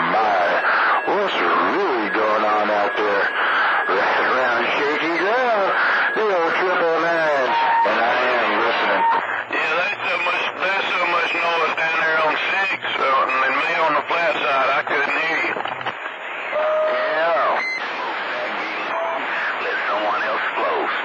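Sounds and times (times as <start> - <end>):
voice over radio receiver: 0.0 - 15.6, 16.8 - 21.0.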